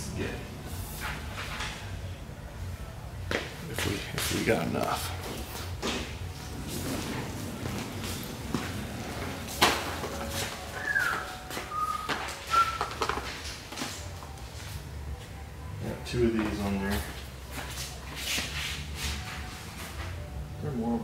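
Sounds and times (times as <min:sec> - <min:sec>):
shopping cart rolling on concrete: 0:06.4 - 0:11.1.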